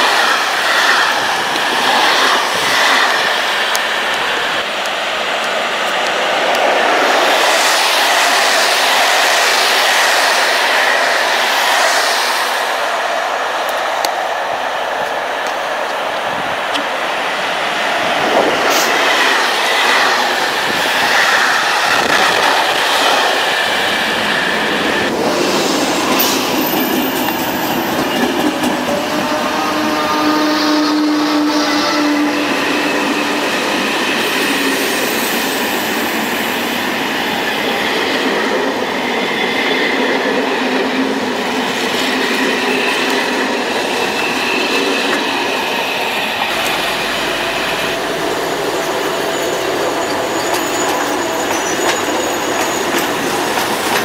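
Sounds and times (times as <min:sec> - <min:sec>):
train rolling with wheel clatter: 0:00.0 - 0:54.0.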